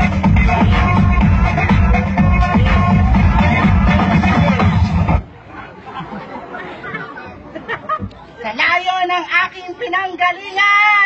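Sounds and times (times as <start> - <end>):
electronic dance music: 0.0 - 5.3
crowd chatter: 0.0 - 11.0.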